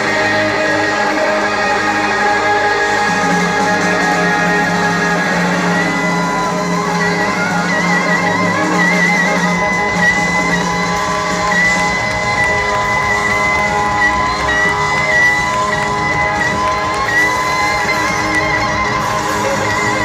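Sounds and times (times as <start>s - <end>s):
crowd cheering: 0.0s - 20.0s
electric guitar holding high note: 0.0s - 20.0s
live rock band: 0.0s - 20.0s.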